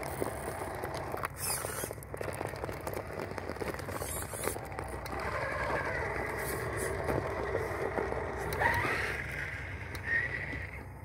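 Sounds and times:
electric motor and gears whining: 0.0s - 11.0s
tyres crunching on gravel: 0.0s - 11.0s.

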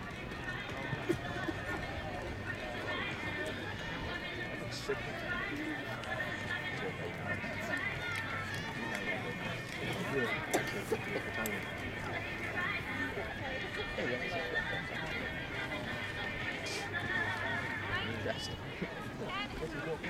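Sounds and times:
running footsteps on runway: 0.0s - 20.0s
spectators chattering: 0.0s - 20.0s.

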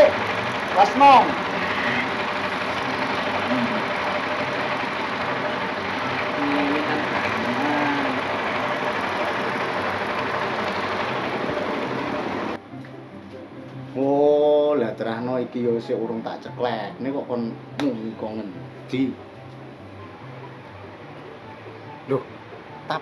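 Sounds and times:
motor running with pulsing drone: 0.0s - 12.6s.

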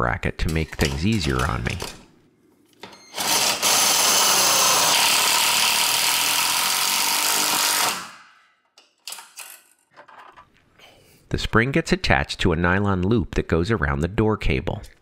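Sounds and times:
cordless drill driving screw: 3.1s - 8.2s.

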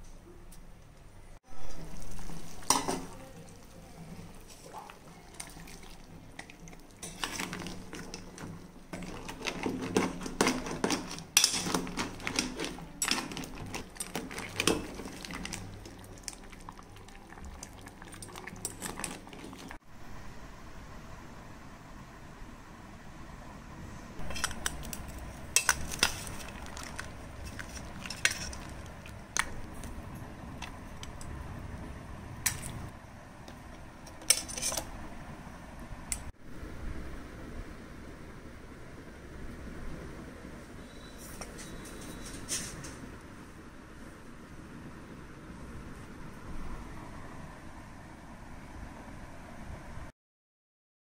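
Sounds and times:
soup bubbling in a pot: 1.6s - 19.8s, 24.2s - 31.3s.

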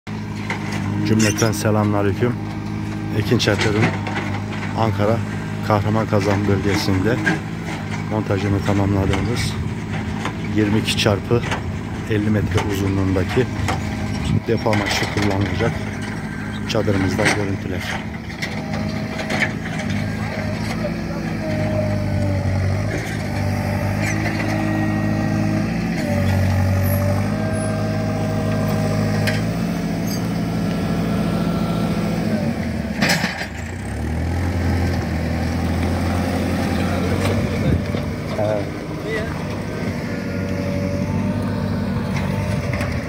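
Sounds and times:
diesel engine running: 0.1s - 43.0s.

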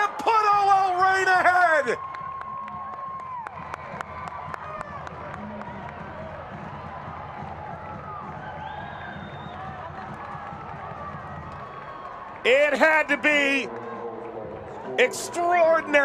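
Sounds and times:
crowd cheering: 0.0s - 16.0s
crowd clapping: 0.0s - 16.0s.

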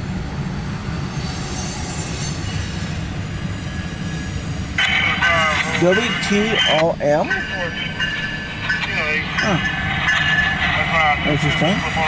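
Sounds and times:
freight train rumbling past: 0.0s - 12.0s
high-pitched wheel squeal: 0.9s - 10.7s.

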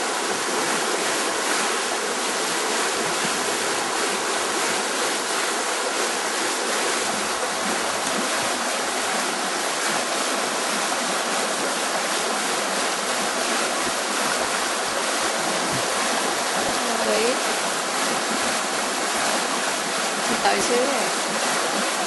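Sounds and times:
stream water rushing: 0.0s - 22.0s.

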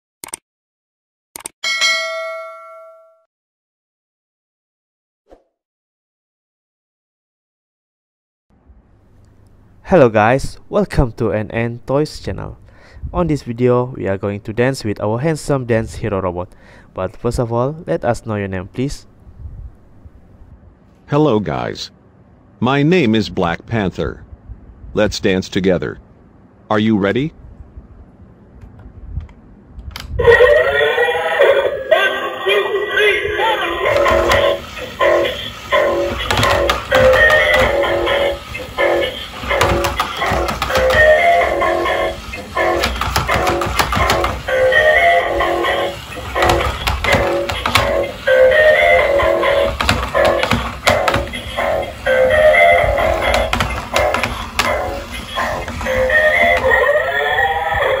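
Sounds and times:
notification bell ding: 1.6s - 3.3s
toy speaker playing dance song: 30.2s - 58.0s.

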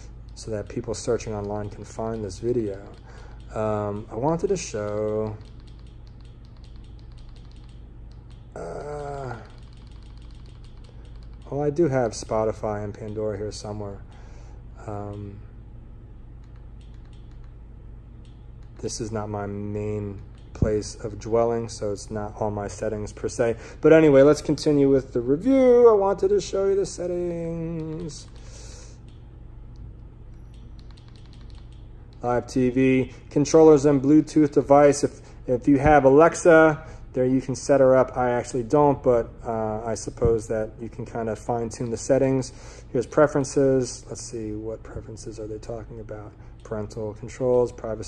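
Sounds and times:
rapid faint clicks: 0.0s - 14.4s, 16.4s - 21.9s, 26.3s - 32.7s, 41.4s - 48.0s
low steady hum: 0.0s - 48.0s
faint remote clicks: 16.4s - 17.6s, 27.6s - 32.3s.

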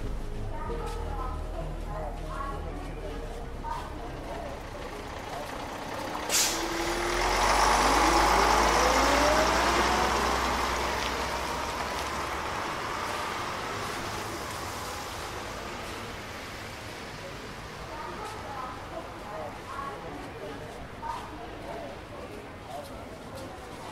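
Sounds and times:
large vehicle engine: 0.0s - 23.9s
air brake hiss: 6.3s - 6.7s.

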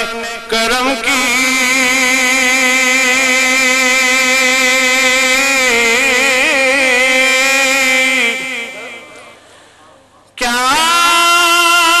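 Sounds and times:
man singing through microphone: 0.0s - 9.4s, 10.4s - 12.0s.

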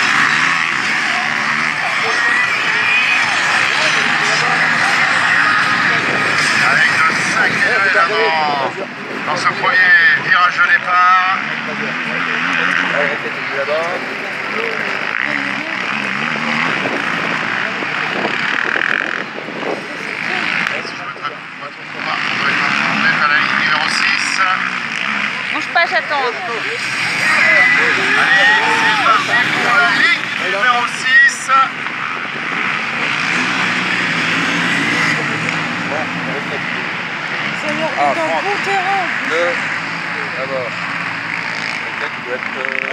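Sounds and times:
quad engines running: 0.0s - 42.9s
man's voice: 1.0s - 14.9s, 25.6s - 31.8s, 37.5s - 40.8s.

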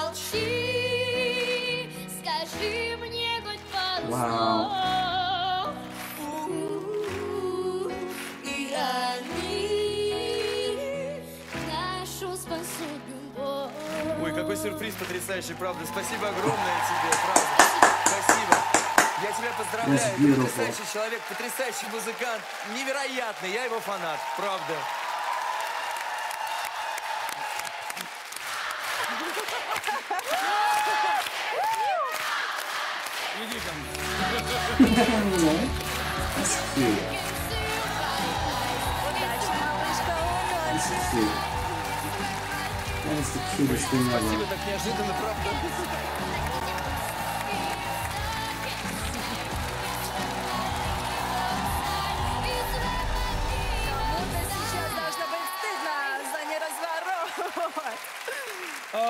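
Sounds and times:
background music with sustained notes: 0.0s - 24.6s, 33.0s - 57.1s
audience applauding and cheering: 0.0s - 59.0s.

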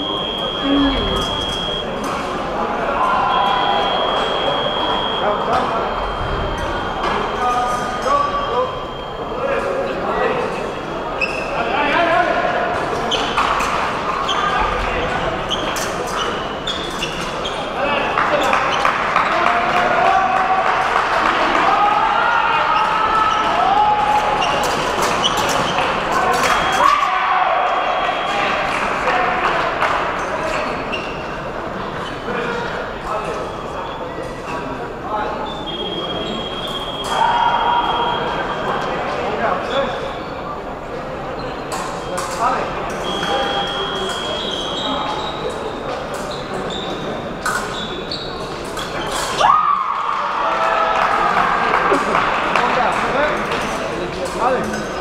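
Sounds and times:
high electronic beep: 0.0s - 2.0s, 3.3s - 9.4s, 43.0s - 44.7s
crowd chatter in echoing hall: 0.0s - 55.0s.

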